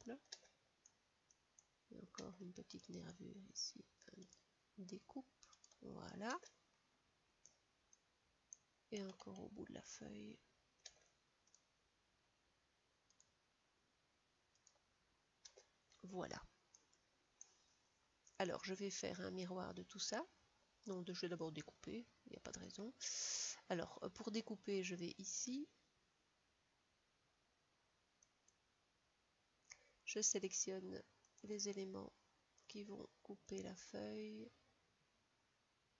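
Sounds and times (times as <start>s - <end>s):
faint computer mouse clicks: 4.2s - 5.8s, 10.8s - 11.7s, 13.1s - 13.3s, 14.5s - 14.8s, 16.7s - 18.4s
faint mouse-button clicks: 13.1s - 13.4s.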